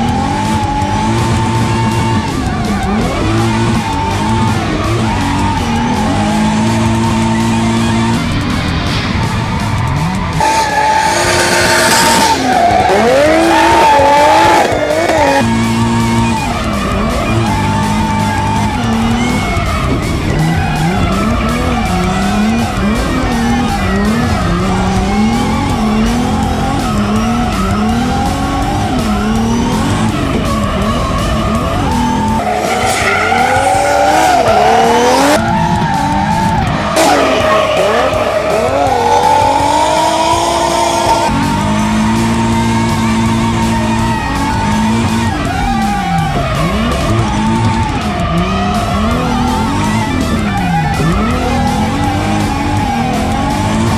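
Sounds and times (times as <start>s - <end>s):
background music: 0.0s - 53.9s
car engine revving: 0.0s - 53.9s
tyres squealing: 9.7s - 53.9s.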